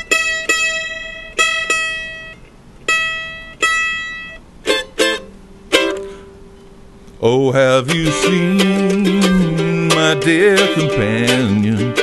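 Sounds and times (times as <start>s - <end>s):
mandolin picked notes: 0.0s - 12.0s.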